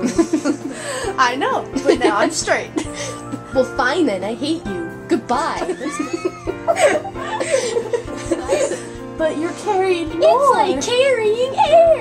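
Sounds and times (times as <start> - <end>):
people laughing: 0.0 - 1.1, 5.6 - 9.0
background music: 0.0 - 12.0.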